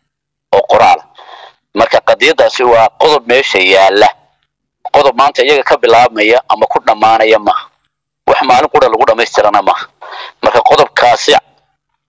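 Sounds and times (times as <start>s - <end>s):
person talking: 0.5s - 11.6s.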